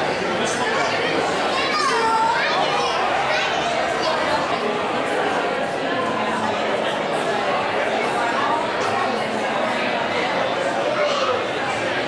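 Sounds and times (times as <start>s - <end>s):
crowd chatter: 0.0s - 12.0s
child's high voice: 1.5s - 3.8s.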